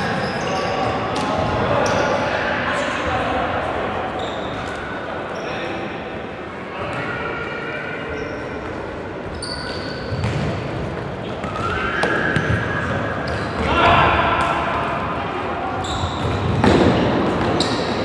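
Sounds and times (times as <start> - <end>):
shoes squeaking on court: 8.2 - 13.6, 15.8 - 18.0
players shouting: 13.6 - 15.8.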